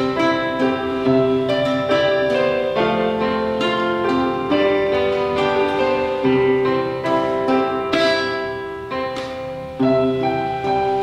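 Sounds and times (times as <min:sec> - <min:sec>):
acoustic guitar plucking: 0:00.0 - 0:11.0
sustained keyboard notes: 0:00.0 - 0:11.0.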